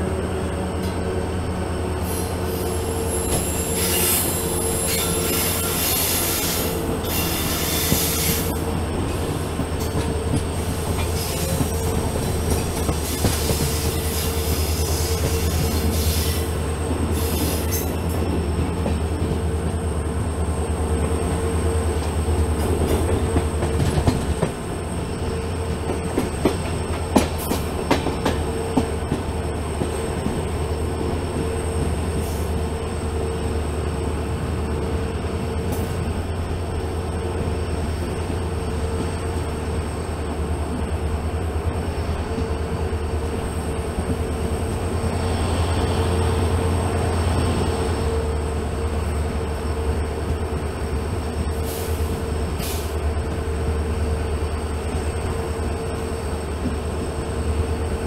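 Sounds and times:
locomotive engine droning: 0:00.0 - 0:58.0
high-pitched wheel squeal: 0:02.5 - 0:08.5.

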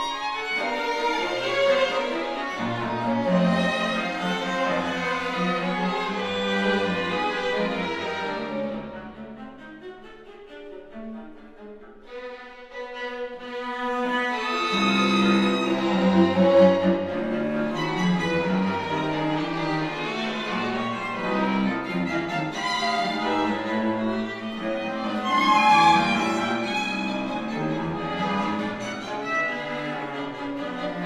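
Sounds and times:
string quartet playing: 0:00.0 - 0:31.0.

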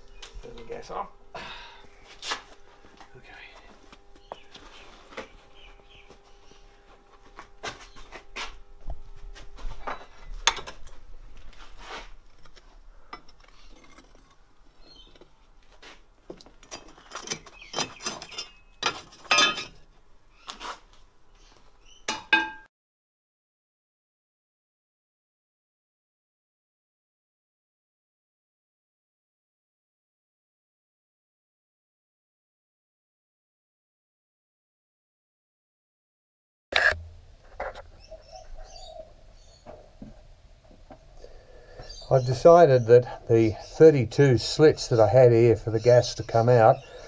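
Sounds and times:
steel tools clinking on metal: 0:16.6 - 0:19.8.

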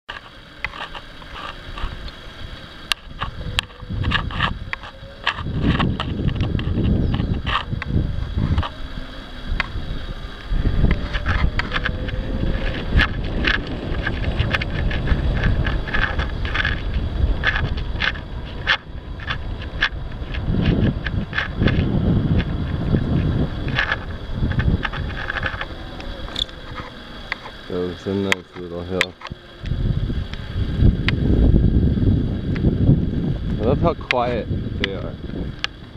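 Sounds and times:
wind buffeting microphone: 0:00.6 - 0:35.9.

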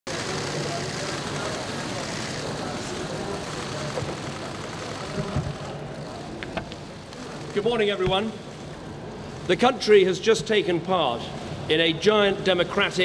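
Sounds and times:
street noise hiss: 0:00.1 - 0:13.0.

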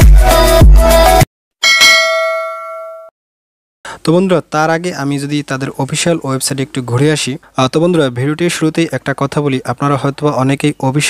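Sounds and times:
bell-like ding: 0:01.6 - 0:03.1.

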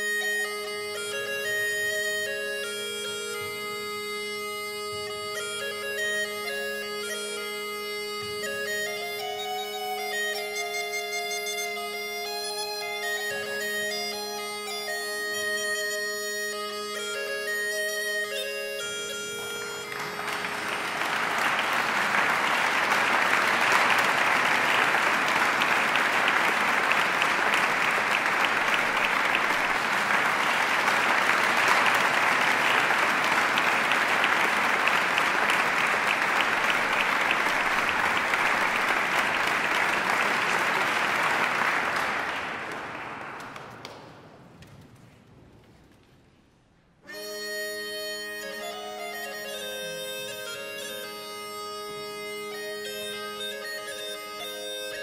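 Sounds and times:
bagpipe melody over drone: 0:00.0 - 0:40.8, 0:47.1 - 0:55.0
audience applause: 0:19.2 - 0:44.3.

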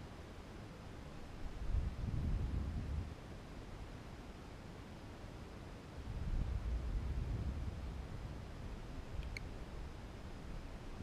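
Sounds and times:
wind buffeting camera: 0:01.5 - 0:03.1, 0:06.0 - 0:11.0.

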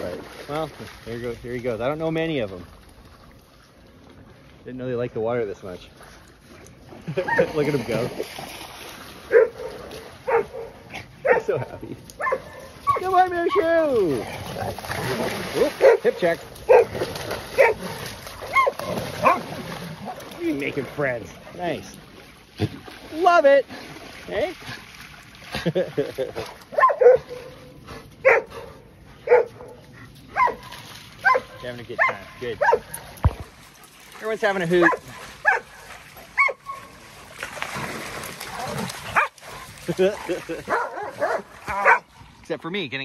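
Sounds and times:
dog barking: 0:09.3 - 0:11.6, 0:12.2 - 0:13.0, 0:15.8 - 0:16.1, 0:16.7 - 0:17.0, 0:17.6 - 0:19.5, 0:26.7 - 0:27.5, 0:28.2 - 0:33.0, 0:34.8 - 0:35.8, 0:36.4 - 0:36.9, 0:39.2 - 0:39.4, 0:40.7 - 0:42.1.

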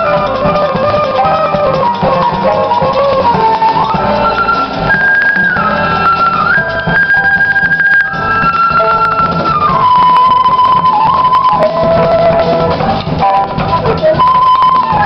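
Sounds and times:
piano: 0:00.0 - 0:15.0
upright bass: 0:00.0 - 0:15.0
wind instrument melody: 0:00.0 - 0:15.0.

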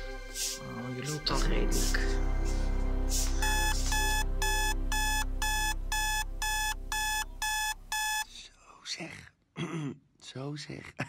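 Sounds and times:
alarm clock beeping: 0:03.4 - 0:08.3.

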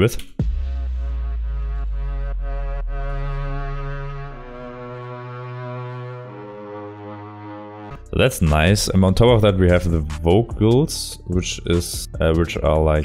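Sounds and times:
cello sustained notes: 0:01.2 - 0:08.1.

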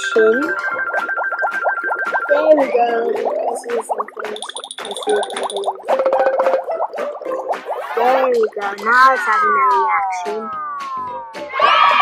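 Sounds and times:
cartoon springy boings: 0:00.0 - 0:11.5
light plucked background music: 0:00.0 - 0:12.0.

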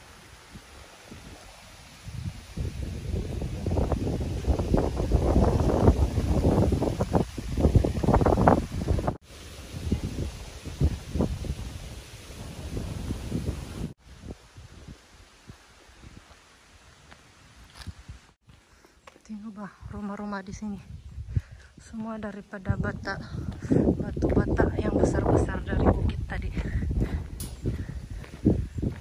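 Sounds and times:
wind buffeting microphone: 0:00.0 - 0:16.4, 0:19.7 - 0:29.0.

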